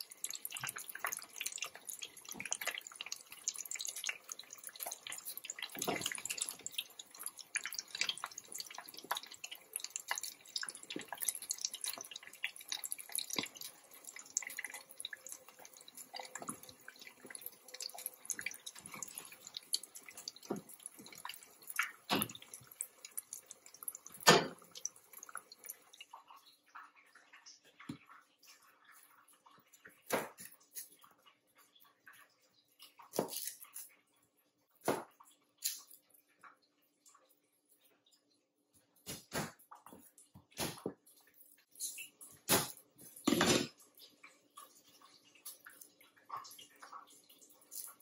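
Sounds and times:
chicken deep-frying in oil: 0:00.0 - 0:48.0.

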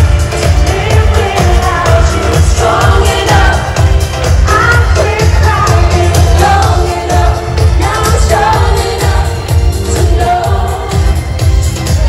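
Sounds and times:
live pop music over loudspeakers: 0:00.0 - 0:12.0.

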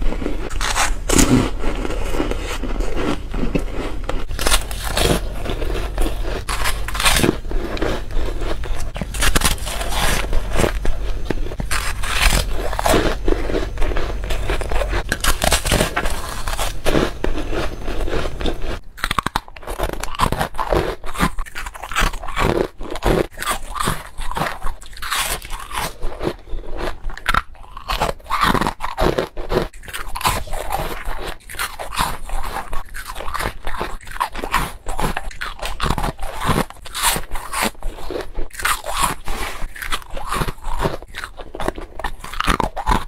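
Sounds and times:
crisp chewing crunches: 0:00.0 - 0:43.0.

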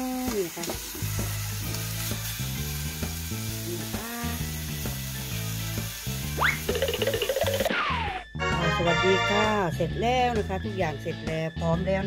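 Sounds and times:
chicken sizzling in a frying pan: 0:00.0 - 0:08.1.

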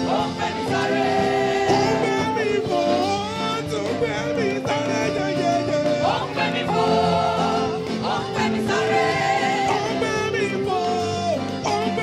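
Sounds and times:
group singing gospel song: 0:00.0 - 0:12.0.

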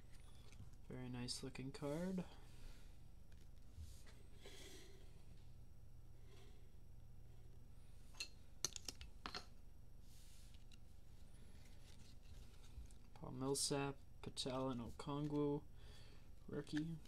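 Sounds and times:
low steady hum: 0:00.0 - 0:17.0
cards sliding rustles: 0:11.4 - 0:13.2, 0:16.5 - 0:17.0.

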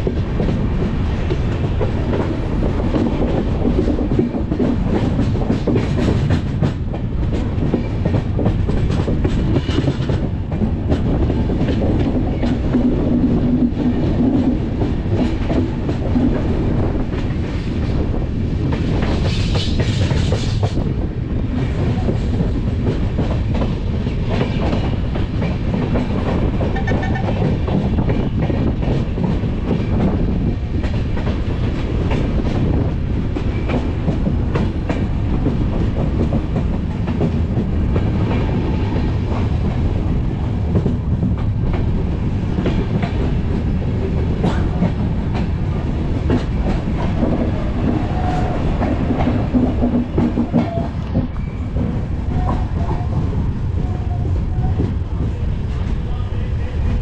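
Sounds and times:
clickety-clack over rail joints: 0:00.0 - 0:57.0
train wheels rumbling: 0:00.0 - 0:57.0.

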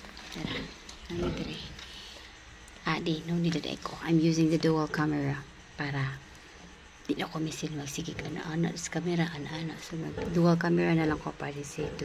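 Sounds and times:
pigs grunting: 0:00.3 - 0:01.9.

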